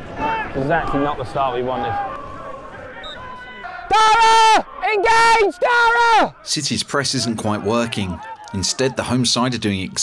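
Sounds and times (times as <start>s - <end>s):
man shouting loudly: 3.9s - 9.1s.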